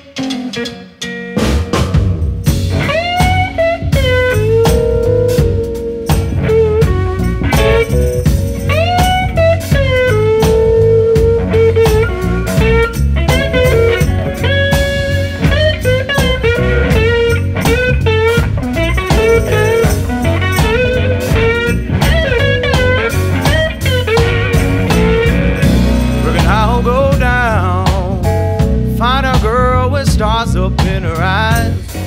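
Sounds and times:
blues-rock band playing: 0:00.0 - 0:32.0
electric guitar lead: 0:00.0 - 0:32.0.

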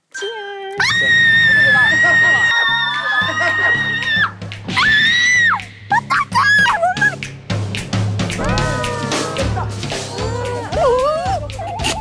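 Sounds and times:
background music with bass line: 0:02.7 - 0:12.0.

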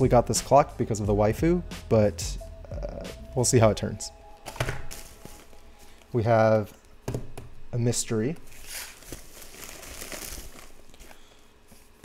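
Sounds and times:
plastic mailer crinkling: 0:08.5 - 0:11.4.

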